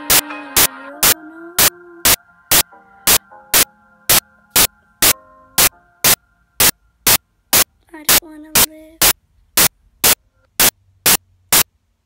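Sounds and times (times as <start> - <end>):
short bursts of static noise: 0.1 - 11.8.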